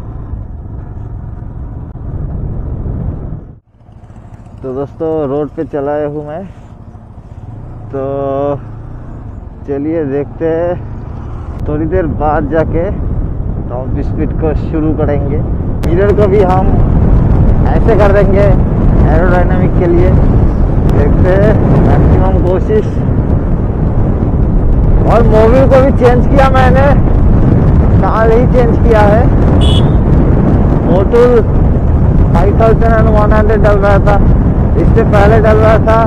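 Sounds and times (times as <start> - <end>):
motorcycle engine running: 0.0 - 12.3
motorcycle engine rumbling: 0.0 - 36.0
wind buffeting microphone: 0.0 - 36.0.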